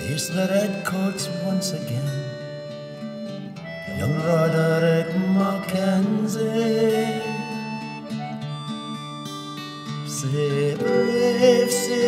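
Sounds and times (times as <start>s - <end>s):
acoustic guitar: 0.0s - 12.0s
man singing long note: 10.2s - 12.0s.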